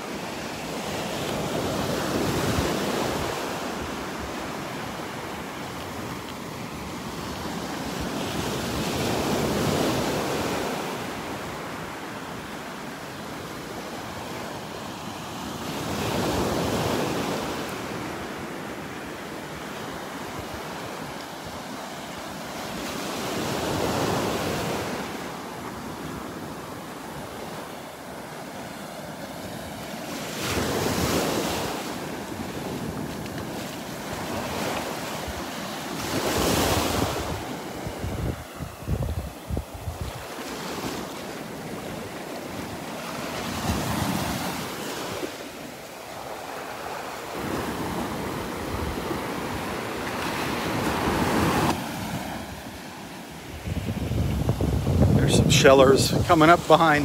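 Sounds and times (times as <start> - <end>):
surf washing up a beach: 0.0 - 57.0
wind buffeting microphone: 36.8 - 40.3, 53.5 - 56.4.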